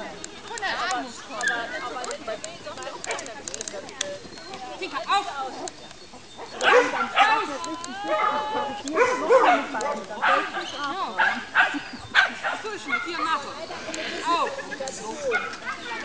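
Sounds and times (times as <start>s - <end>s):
dog barking and yipping: 6.4s - 13.4s, 15.2s - 16.0s.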